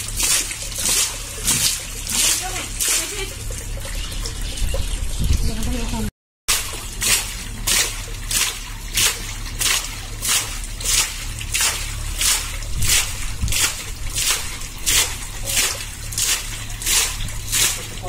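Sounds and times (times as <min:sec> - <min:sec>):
muddy water splashing from pipe: 0:00.0 - 0:18.0.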